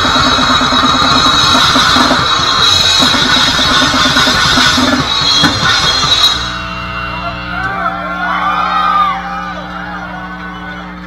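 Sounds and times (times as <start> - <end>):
very fast drumming: 0.0 - 7.1
distorted guitar: 0.0 - 11.0
steady low ringing tone: 0.0 - 11.0.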